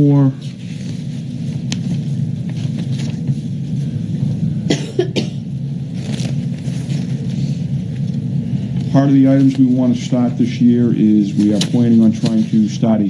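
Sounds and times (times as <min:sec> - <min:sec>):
low microphone hum: 0:00.0 - 0:13.0
paper rustling: 0:00.4 - 0:03.5, 0:06.0 - 0:07.5, 0:11.0 - 0:13.0
person coughing: 0:04.7 - 0:05.5.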